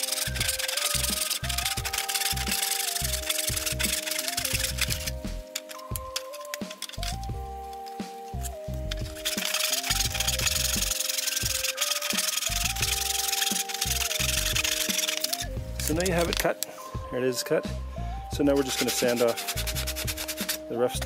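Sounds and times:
hand saw cutting wood: 0.0 - 7.3, 8.3 - 16.4, 18.6 - 20.7
background music with sustained chords: 0.0 - 21.0.

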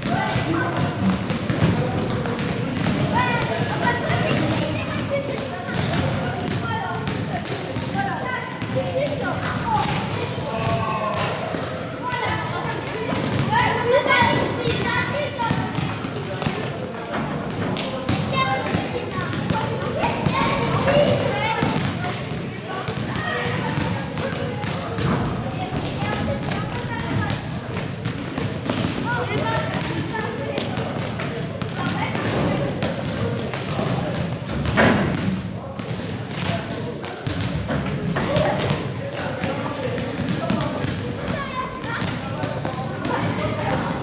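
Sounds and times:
children chattering and calling: 0.0 - 34.5, 35.6 - 44.0
basketballs bouncing on floor: 0.0 - 44.0.

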